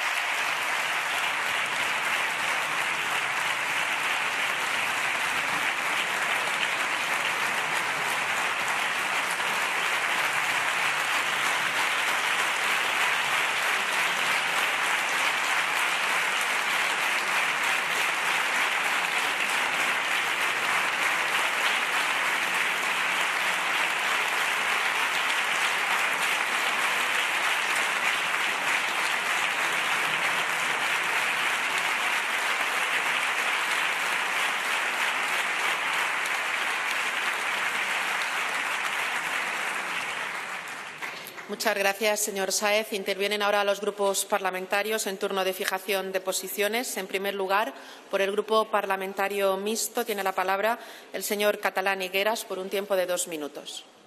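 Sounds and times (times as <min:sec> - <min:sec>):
crowd applauding: 0:00.0 - 0:43.3.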